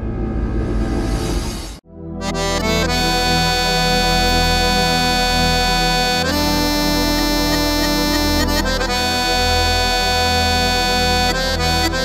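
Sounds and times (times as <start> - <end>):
electronic keyboard instrumental: 1.8 - 12.0.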